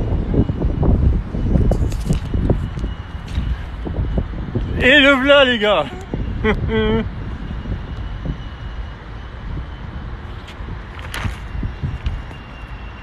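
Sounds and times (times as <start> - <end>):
low rumble of urban background: 0.0 - 13.0.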